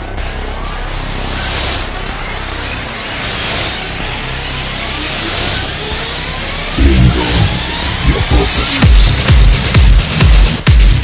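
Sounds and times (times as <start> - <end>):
rough engine-like drone: 6.5 - 9.1
rising noise sweep: 6.8 - 8.8
distorted bass and kick hits: 6.8 - 10.0.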